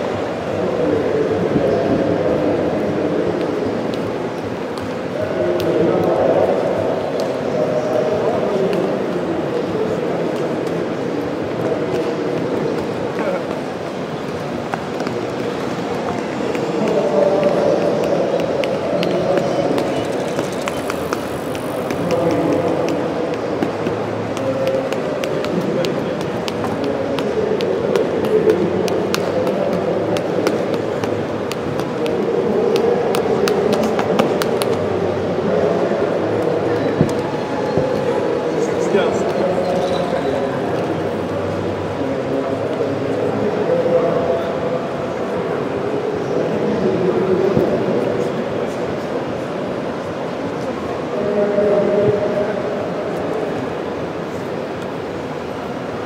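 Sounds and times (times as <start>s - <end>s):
crowd chatter in a hall: 0.0s - 56.0s.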